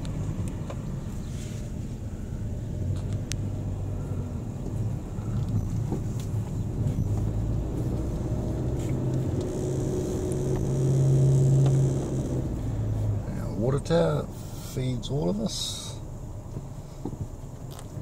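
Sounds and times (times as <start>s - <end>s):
car engine hum: 0.0s - 18.0s
road noise inside car: 0.0s - 18.0s.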